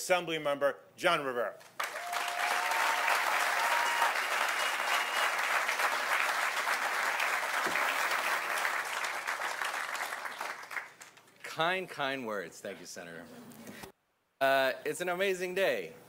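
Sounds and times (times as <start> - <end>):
audience applauding: 1.8 - 11.2.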